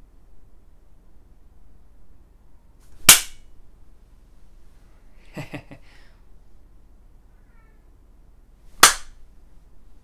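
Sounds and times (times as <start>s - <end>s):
faint high-pitched call: 7.3s - 8.0s.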